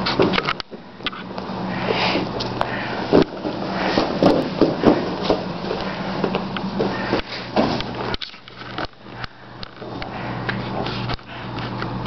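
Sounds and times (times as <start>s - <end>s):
steady low hum: 0.0s - 12.0s
heavy breathing: 1.6s - 8.2s, 9.0s - 11.8s.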